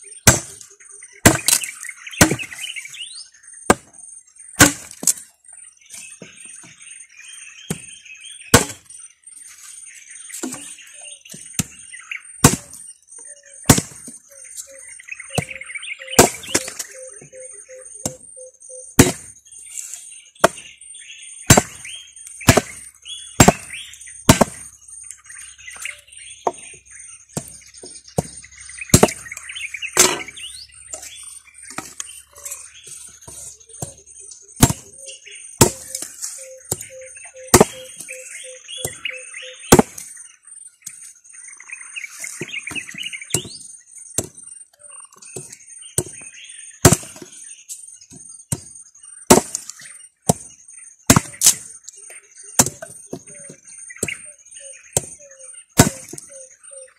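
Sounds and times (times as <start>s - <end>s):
machete chopping onto wooden board: 0.2s - 2.6s, 3.7s - 3.9s, 4.6s - 5.2s, 7.6s - 8.9s, 12.4s - 12.8s, 13.6s - 14.2s, 15.3s - 17.0s, 19.0s - 19.4s, 20.4s - 20.7s, 21.5s - 24.8s, 26.4s - 30.4s, 33.8s - 35.0s, 35.6s - 38.2s, 39.7s - 40.1s, 42.4s - 44.4s, 45.4s - 47.3s, 49.3s - 51.7s, 52.6s - 53.3s, 55.0s - 55.2s, 55.8s - 56.3s.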